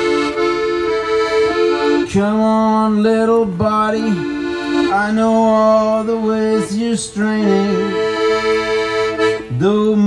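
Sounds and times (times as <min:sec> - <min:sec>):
piano accordion playing: 0:00.0 - 0:10.0.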